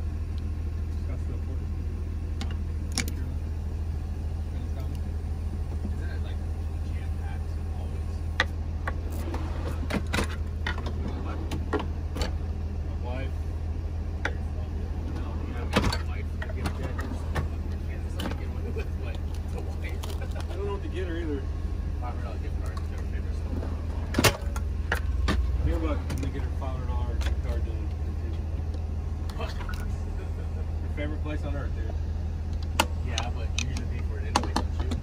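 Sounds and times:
engine idling hum: 0.0s - 35.0s
faint voices: 0.9s - 24.3s.

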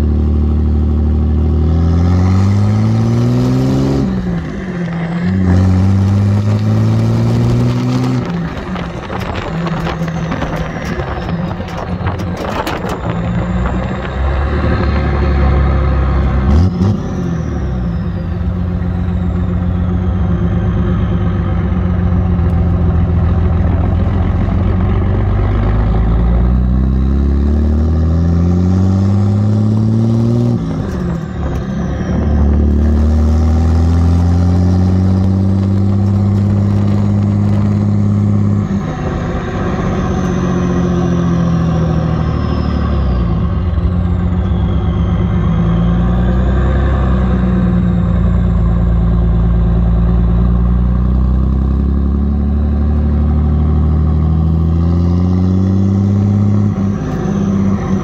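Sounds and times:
diesel engine accelerating: 0.0s - 58.0s
faint high whistle: 39.4s - 47.0s.

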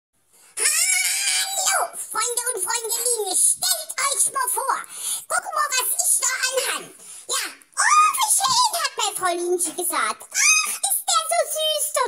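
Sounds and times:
high-pitched vocal squeal: 0.6s - 2.2s, 5.2s - 8.6s, 10.2s - 12.0s.

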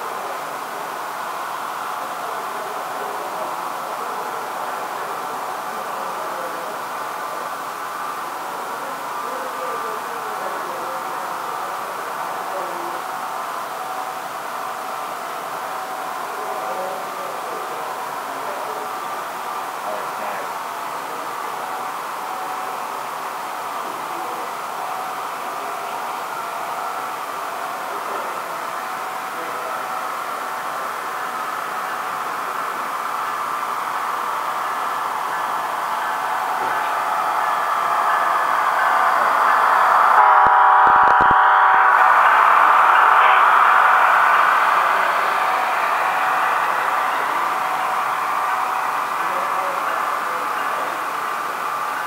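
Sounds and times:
model train running: 0.0s - 52.0s
train horn blast: 39.9s - 43.8s.

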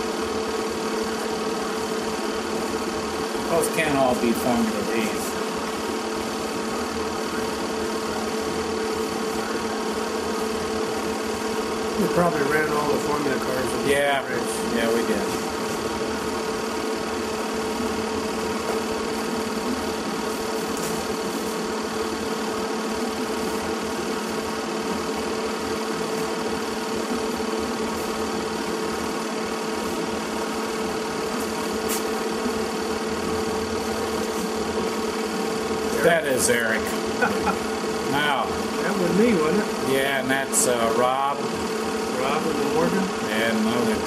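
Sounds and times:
film projector whirring: 0.0s - 44.0s.

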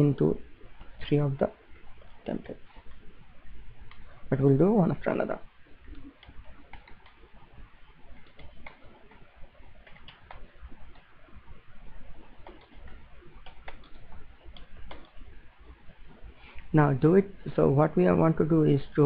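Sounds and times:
low background hum: 0.0s - 19.0s
computer keyboard typing: 5.9s - 7.3s, 8.1s - 11.1s, 12.2s - 15.2s.

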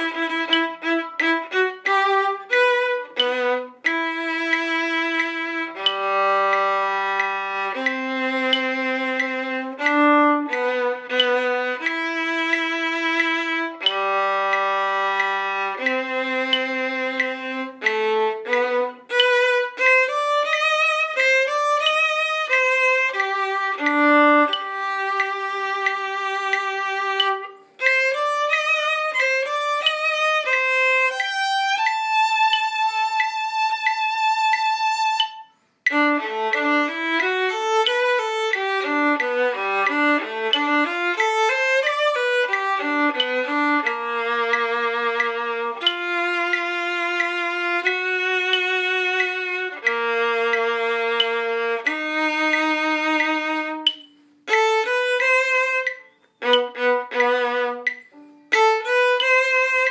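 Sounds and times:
bowed string instrument melody: 0.0s - 59.9s.

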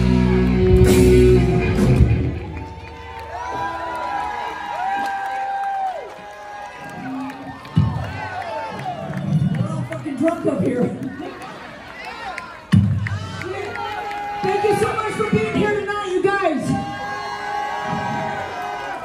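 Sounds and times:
live hard rock band playing: 0.0s - 2.7s
audience cheering and whooping: 0.0s - 15.5s, 16.3s - 19.0s.

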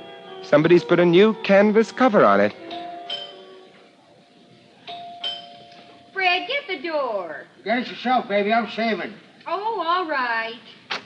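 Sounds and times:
two-note doorbell chime: 2.6s - 3.6s, 4.9s - 5.8s.

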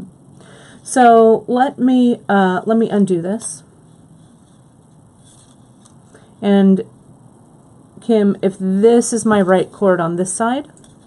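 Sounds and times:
leather cord rustling: 3.9s - 6.1s.

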